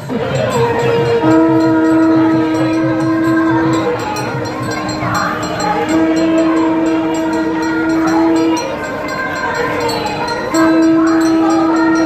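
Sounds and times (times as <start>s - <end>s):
crowd noise: 0.0s - 12.0s
drum strokes: 0.0s - 12.0s
long steady reed note: 0.0s - 12.0s.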